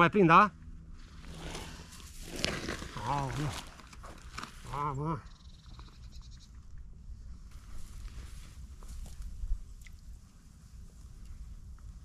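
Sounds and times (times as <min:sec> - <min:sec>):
wind rumble on microphone: 0:05.3 - 0:12.0.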